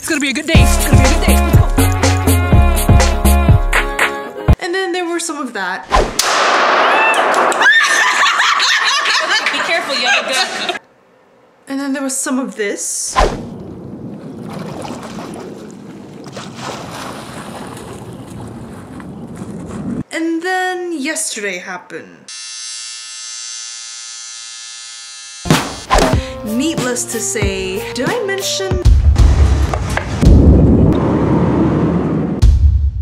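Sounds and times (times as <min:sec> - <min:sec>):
handgun shot: 0:06.0 - 0:08.0
women laughing: 0:07.6 - 0:10.8
tattoo machine buzzing: 0:22.3 - 0:25.5.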